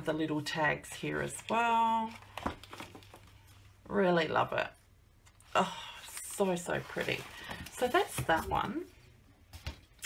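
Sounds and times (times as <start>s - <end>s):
paper rustling: 6.2s - 8.9s.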